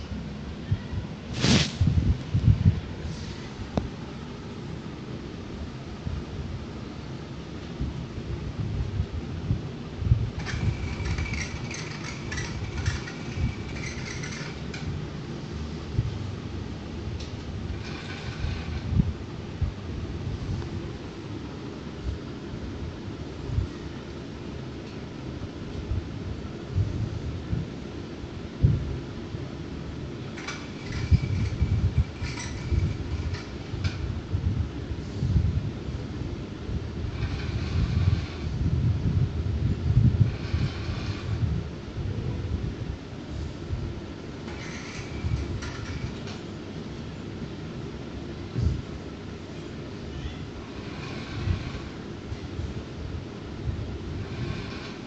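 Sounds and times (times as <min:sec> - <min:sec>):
steady low rumble: 0:00.0 - 0:55.0.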